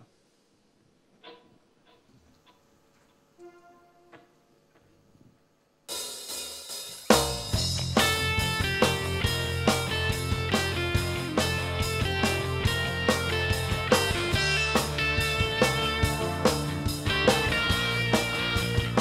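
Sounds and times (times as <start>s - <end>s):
rock band playing: 5.9s - 19.0s.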